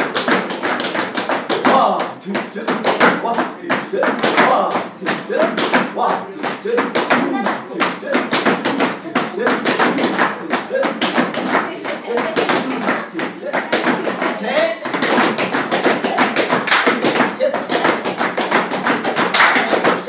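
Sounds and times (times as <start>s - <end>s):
boots stamping on tiled floor: 0.0s - 20.0s
person counting: 1.5s - 20.0s
hands slapping rubber boots: 6.5s - 20.0s.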